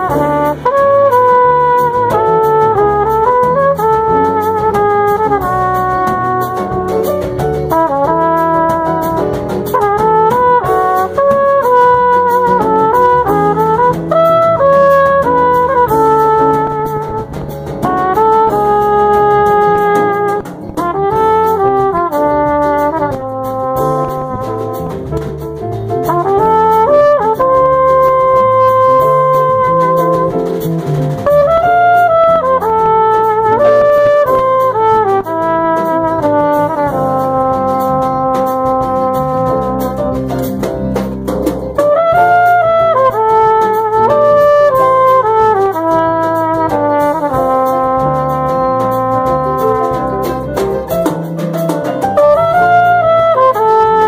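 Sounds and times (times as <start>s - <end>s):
jazz samba band: 0.0s - 54.0s
lead horn melody: 0.0s - 54.0s.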